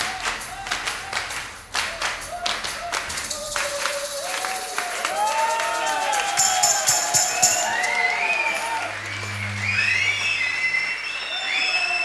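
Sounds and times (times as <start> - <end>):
rhythmic hand claps: 0.0 - 12.0.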